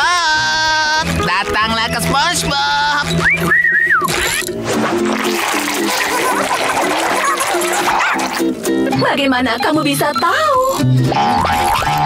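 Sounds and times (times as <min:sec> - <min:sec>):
cartoon whistle: 0:03.2 - 0:04.5.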